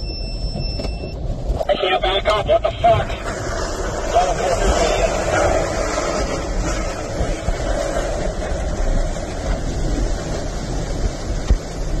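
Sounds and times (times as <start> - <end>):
wind buffeting a car: 0.0 - 12.0.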